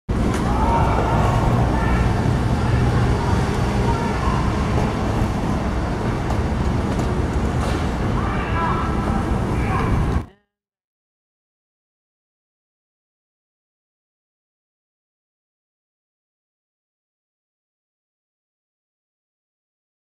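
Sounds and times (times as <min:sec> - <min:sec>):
vehicle engines rumbling: 0:00.1 - 0:10.3
faint voices: 0:00.2 - 0:10.4.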